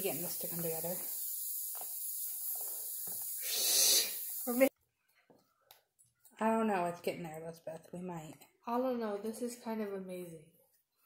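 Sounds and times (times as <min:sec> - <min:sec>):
loud breathy exhale: 0:03.4 - 0:04.4.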